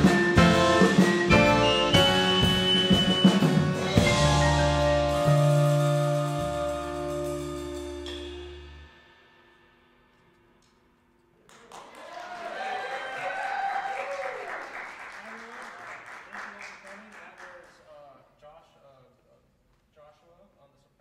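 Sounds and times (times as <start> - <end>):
jazz ensemble final chord: 0.0 - 9.2
audience cheers: 11.5 - 16.6
audience applause: 11.5 - 17.8.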